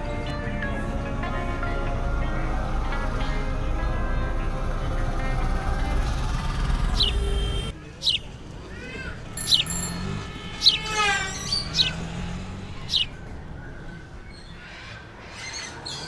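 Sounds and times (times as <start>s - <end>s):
birds chirping: 6.4s - 16.0s.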